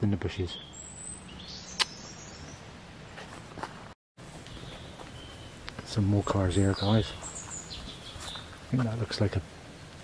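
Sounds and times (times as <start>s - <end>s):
sharp click: 1.8s - 2.0s.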